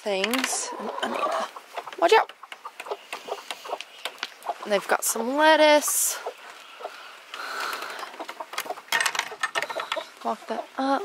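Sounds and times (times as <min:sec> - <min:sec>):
hen clucking: 0:00.1 - 0:11.0.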